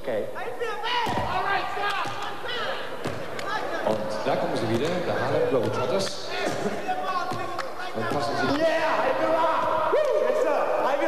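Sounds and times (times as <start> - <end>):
crowd voices in large hall: 0.0 - 11.0
basketball bouncing on court: 3.0 - 6.6, 7.2 - 8.6.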